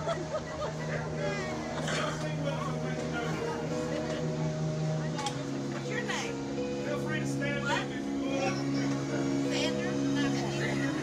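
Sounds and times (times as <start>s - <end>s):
people talking: 0.0s - 4.2s, 5.1s - 11.0s
low droning hum: 0.0s - 11.0s.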